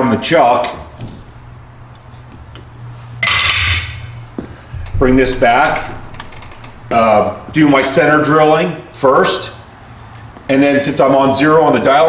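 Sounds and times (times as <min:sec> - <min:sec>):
low steady hum: 0:00.6 - 0:10.4.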